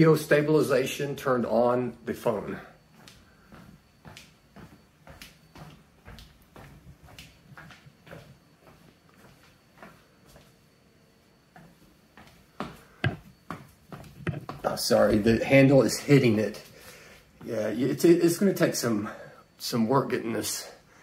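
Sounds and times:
faint footsteps walking: 1.5s - 19.9s.

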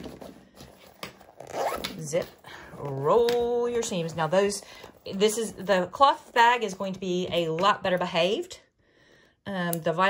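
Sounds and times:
zipper rasping: 0.0s - 6.9s.

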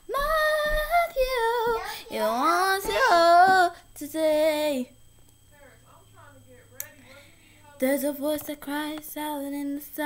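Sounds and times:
girl singing gospel: 0.0s - 5.1s, 6.9s - 10.0s.

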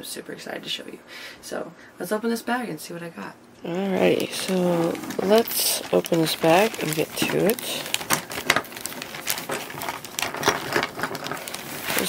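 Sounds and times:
plastic bag crinkling: 3.9s - 12.0s.

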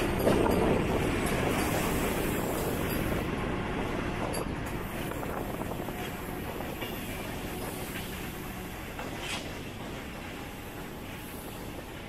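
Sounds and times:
train wheels on rails: 0.0s - 12.0s.

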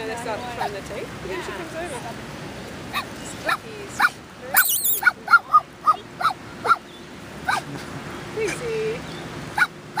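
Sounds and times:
dog yipping: 4.0s - 6.8s, 9.6s - 10.0s.

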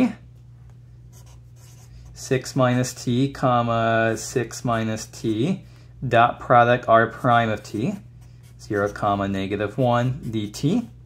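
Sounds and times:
steady low hum: 0.0s - 11.0s
marker writing on paper: 7.6s - 9.2s.

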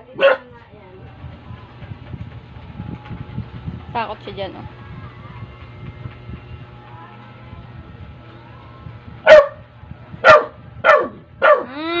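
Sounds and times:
dog barking: 0.2s - 0.5s, 9.3s - 9.6s, 10.2s - 11.7s.

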